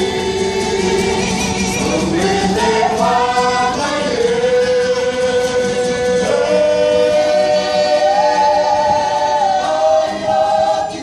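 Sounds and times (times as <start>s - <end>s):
group singing in unison: 0.0s - 11.0s.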